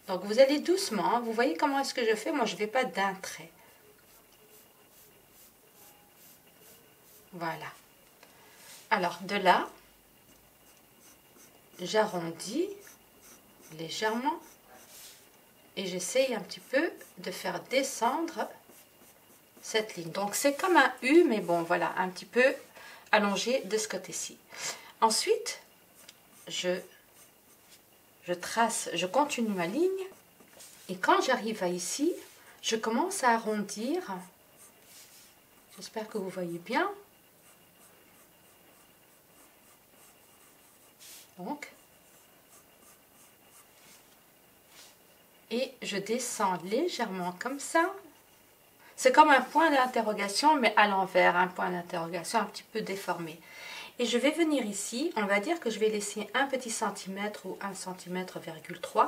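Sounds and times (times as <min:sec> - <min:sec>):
thin steady high tone: 0:03.6 - 0:07.6
colored pencil scratching paper: 0:04.0 - 0:07.4, 0:10.2 - 0:15.3, 0:16.0 - 0:21.9, 0:26.0 - 0:27.8, 0:33.8 - 0:36.1, 0:37.4 - 0:44.0.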